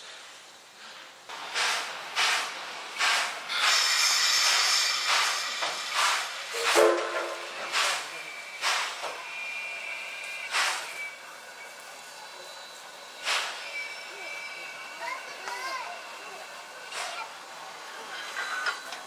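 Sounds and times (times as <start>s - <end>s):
steam hissing: 0.0s - 19.0s
steam locomotive chuffing: 0.8s - 19.0s.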